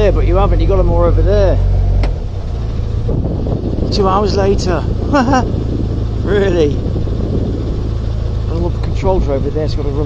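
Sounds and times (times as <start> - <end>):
boat engine rumbling: 0.0 - 10.0
wind buffeting microphone: 0.0 - 10.0.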